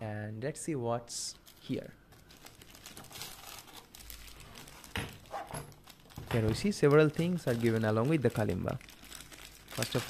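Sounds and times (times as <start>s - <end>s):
plastic bag crinkling: 1.4s - 10.0s.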